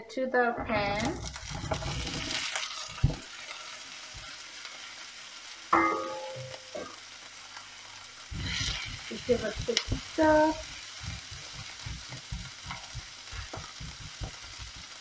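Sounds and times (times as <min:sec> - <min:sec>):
wooden spoon stirring in pan: 0:00.7 - 0:05.2, 0:06.9 - 0:15.0
beans sizzling in hot oil: 0:00.7 - 0:15.0.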